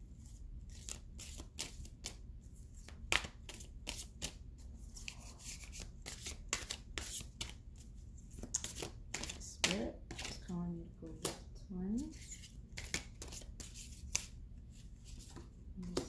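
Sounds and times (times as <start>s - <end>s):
cards being shuffled: 0.7s - 2.2s, 2.8s - 7.6s, 8.3s - 10.4s, 12.1s - 16.0s.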